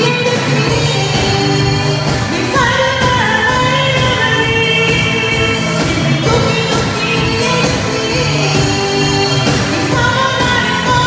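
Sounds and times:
keyboard and drum kit: 0.0 - 11.0
woman singing into microphone: 0.0 - 11.0.

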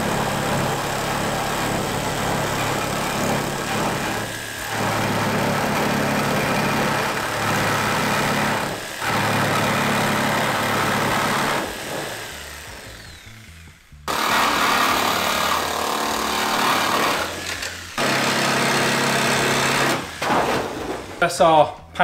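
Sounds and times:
jigsaw cutting sheet steel: 0.0 - 21.2.

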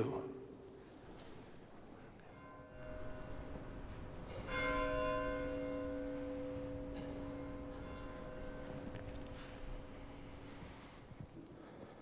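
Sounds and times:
bell ringing: 2.4 - 10.6.

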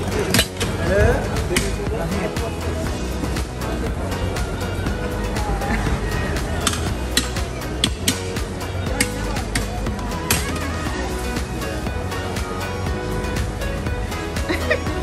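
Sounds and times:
background music with steady beat: 0.0 - 15.0.

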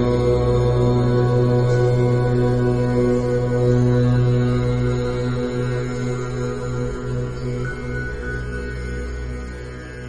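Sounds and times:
low held mantra drone: 0.0 - 10.0.

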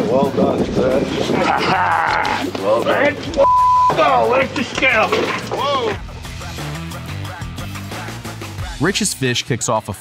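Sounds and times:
censor bleep: 3.4 - 4.0.

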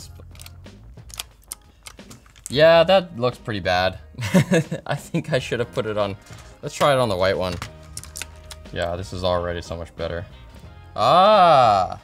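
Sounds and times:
keycaps clicking onto switches: 0.3 - 2.5.

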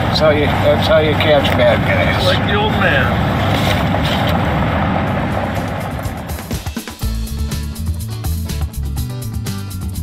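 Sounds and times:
road and engine noise in car: 0.0 - 6.9
music with a beat: 6.0 - 10.0.

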